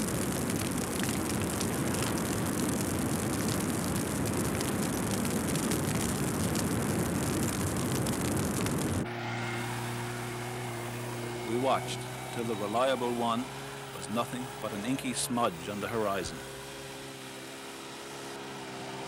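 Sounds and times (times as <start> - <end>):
rushing rumbling fire noise: 0.0 - 16.8
small boat engine hum: 8.8 - 19.0.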